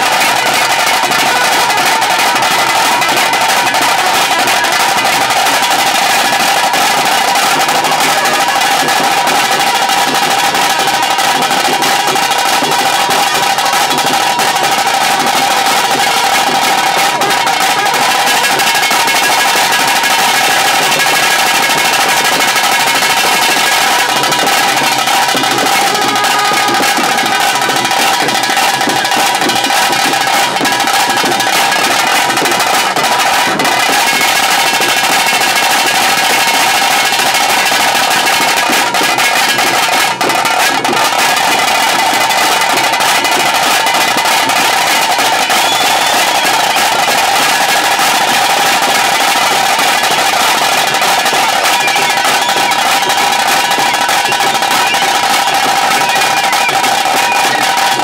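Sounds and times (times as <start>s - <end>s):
fast drumming with sticks: 0.0s - 58.0s.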